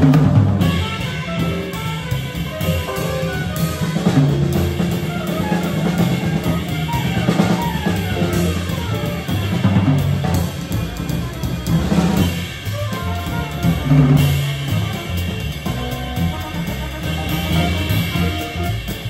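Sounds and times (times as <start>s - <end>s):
bass: 0.0s - 19.0s
drum kit: 0.0s - 19.0s
trumpet: 0.0s - 19.0s.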